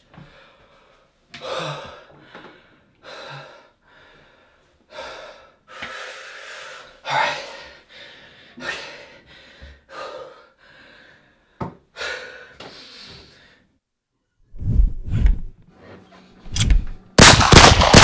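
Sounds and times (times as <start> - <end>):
man breathing heavily: 0.1 - 13.8.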